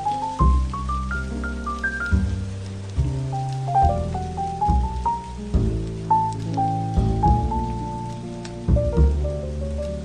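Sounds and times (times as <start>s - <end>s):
rain pattering: 0.0s - 10.0s
slow jazz music: 0.0s - 10.0s.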